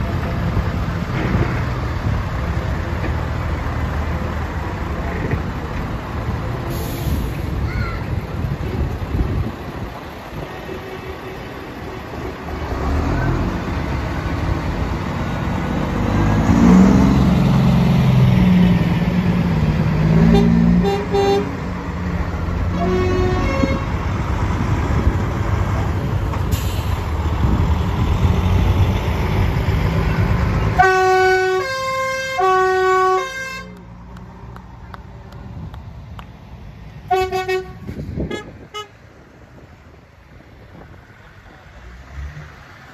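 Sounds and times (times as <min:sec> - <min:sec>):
diesel truck engines rumbling: 0:00.0 - 0:42.9.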